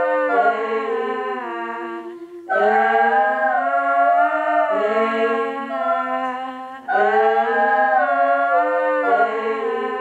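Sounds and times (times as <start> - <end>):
layered wordless female vocals: 0.0 - 10.0.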